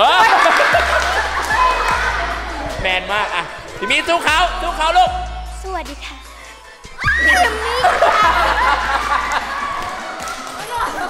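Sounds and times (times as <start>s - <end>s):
girls cheering and laughing: 0.0s - 2.8s, 6.2s - 11.0s.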